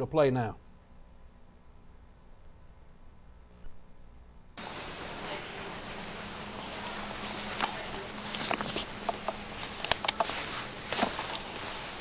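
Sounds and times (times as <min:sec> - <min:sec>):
steady hiss: 0:04.6 - 0:12.0
footsteps and camera handling: 0:07.4 - 0:12.0.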